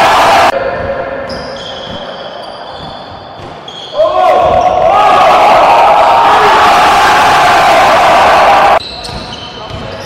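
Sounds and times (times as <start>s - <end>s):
loud shouting from crowd: 0.0s - 0.6s, 4.0s - 8.8s.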